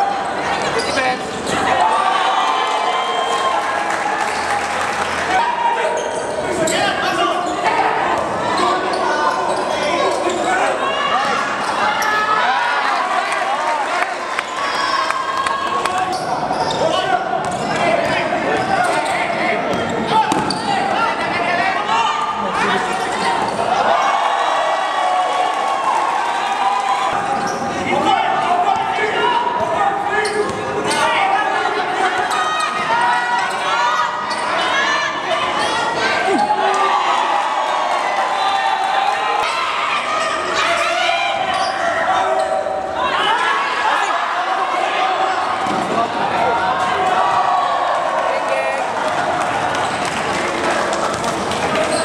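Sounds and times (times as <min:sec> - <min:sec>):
echoing voices in a hall: 0:00.0 - 0:52.0
players and spectators calling: 0:00.0 - 0:52.0.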